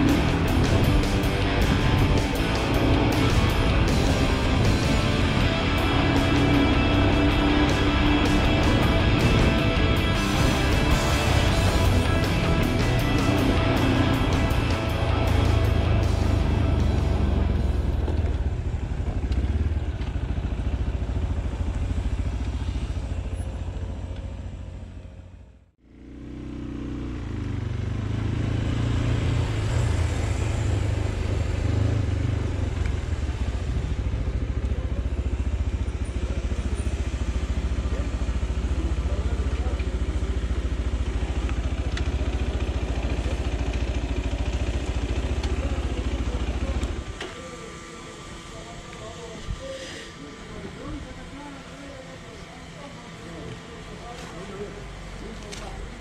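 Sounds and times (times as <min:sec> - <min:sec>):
motorcycle engine rumble: 0:00.0 - 0:56.0
wind and road noise: 0:00.0 - 0:56.0.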